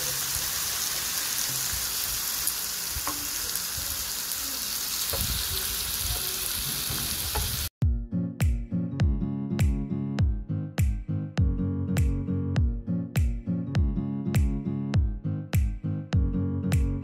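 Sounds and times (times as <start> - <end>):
meat sizzling on a griddle: 0.0 - 7.7
music with plucked notes: 7.8 - 17.0.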